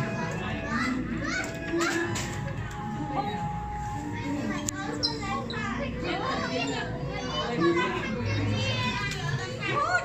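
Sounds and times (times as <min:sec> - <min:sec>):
crowd chatter with children: 0:00.0 - 0:10.0.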